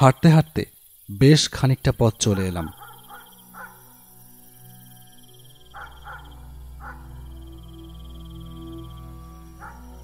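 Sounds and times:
crickets chirring: 0.0 - 10.0
low music drone: 3.4 - 10.0.

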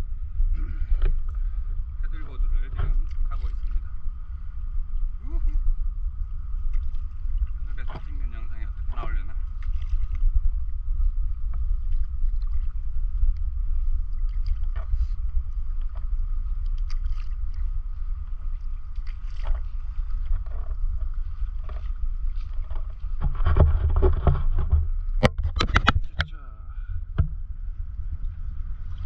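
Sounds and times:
steady low rumble: 0.0 - 29.0
paddle splashing in water: 6.6 - 10.6, 11.5 - 26.2.

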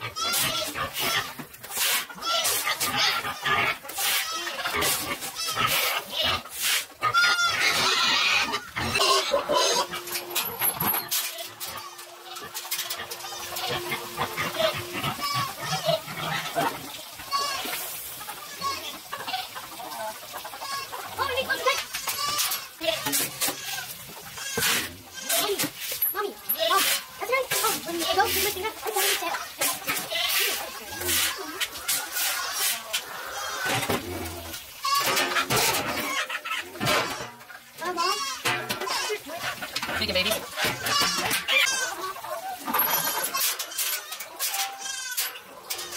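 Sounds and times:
chickens calling: 0.0 - 45.9
goats calling: 0.0 - 45.9
feed being scooped: 0.2 - 16.8, 24.6 - 36.2.

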